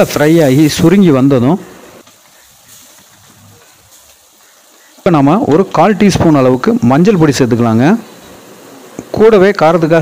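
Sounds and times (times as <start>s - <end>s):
faint sizzling of frying food: 0.0s - 10.0s.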